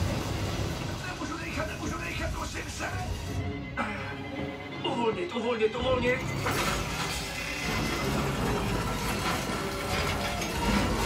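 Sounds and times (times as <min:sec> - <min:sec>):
film music: 0:00.0 - 0:11.0.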